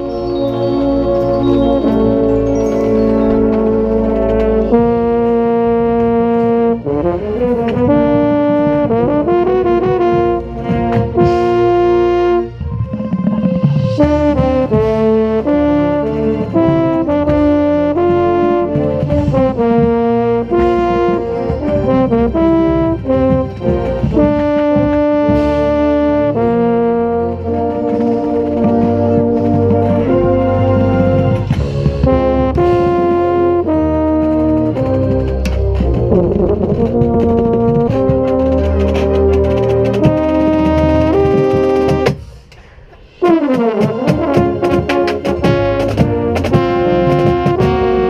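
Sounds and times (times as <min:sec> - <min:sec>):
brass ensemble playing: 0:00.0 - 0:48.0.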